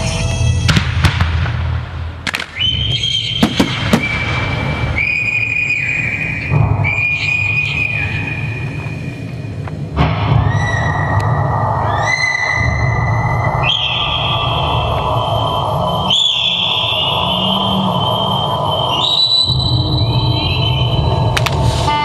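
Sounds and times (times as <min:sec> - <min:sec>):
firework bangs and cracks: 0:00.6 - 0:07.1.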